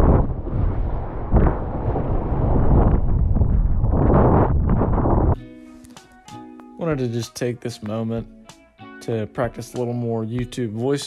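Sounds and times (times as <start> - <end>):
wind buffeting microphone: 0.0 - 5.4
plucked guitar music: 5.4 - 11.0.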